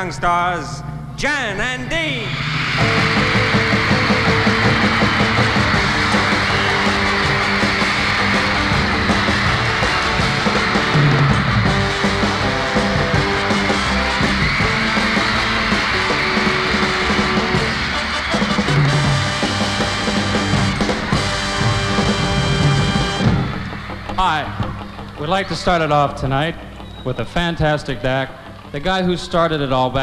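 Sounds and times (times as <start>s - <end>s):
live band music: 2.2s - 28.7s.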